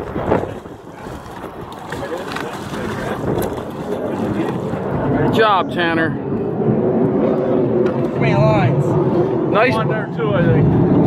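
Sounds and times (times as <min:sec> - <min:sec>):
fish splashing and thrashing in water: 0:00.0 - 0:05.1
wind on microphone: 0:00.0 - 0:11.0.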